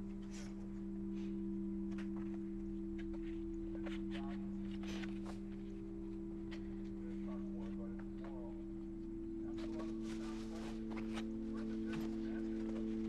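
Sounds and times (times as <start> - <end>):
low drone of held tones: 0.0 - 13.0
book pages rustling: 1.9 - 8.5, 9.4 - 13.0.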